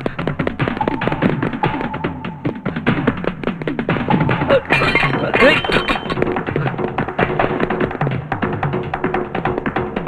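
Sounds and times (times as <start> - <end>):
rapid percussion strikes: 0.0 - 10.0.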